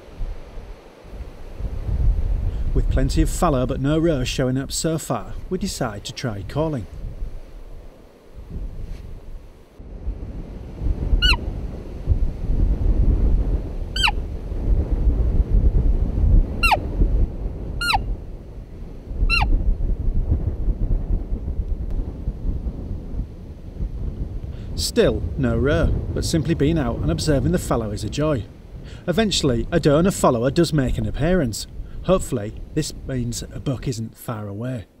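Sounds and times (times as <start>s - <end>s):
low wind rumble on microphone: 0.0s - 34.2s
high-pitched mouth squeaks: 14.0s - 14.2s, 17.8s - 18.0s.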